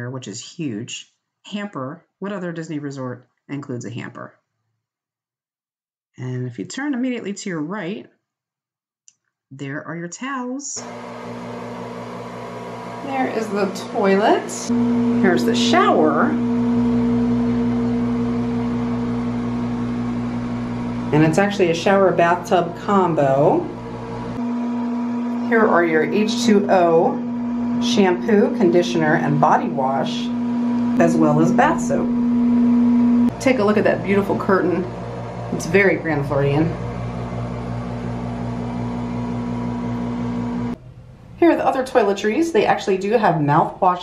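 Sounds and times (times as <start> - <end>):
ventilation fan humming: 10.8 - 40.8.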